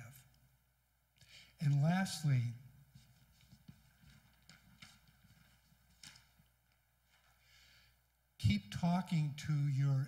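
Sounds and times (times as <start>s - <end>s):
faint footsteps on a stage: 2.8s - 7.4s.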